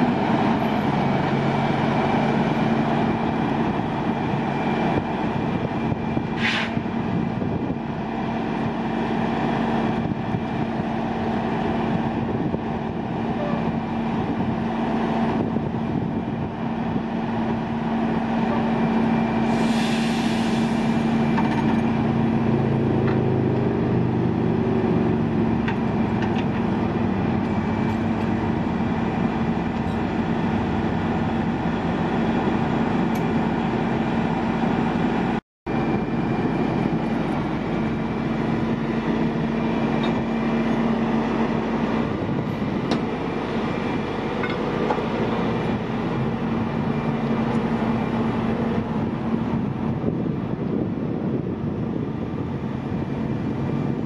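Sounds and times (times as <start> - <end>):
diesel engine running: 0.0 - 54.0
short hydraulic hiss: 6.4 - 6.8, 19.5 - 21.0.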